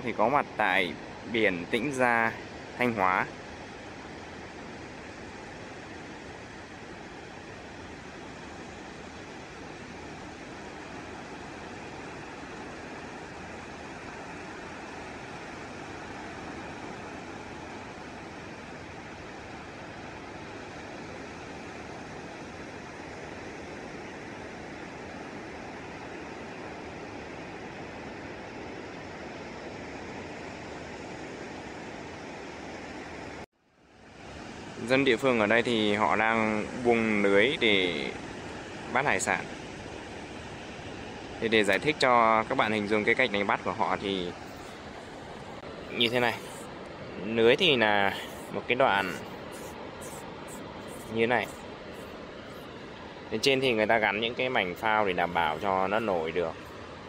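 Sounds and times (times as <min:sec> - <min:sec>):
surf hissing on beach: 0:00.0 - 0:57.0.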